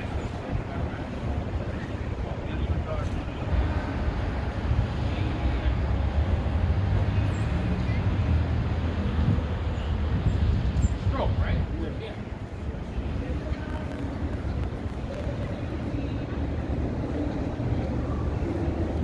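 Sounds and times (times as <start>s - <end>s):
distant traffic: 0.0s - 19.0s
faint voices: 0.0s - 19.0s
wind rumble on microphone: 0.0s - 19.0s.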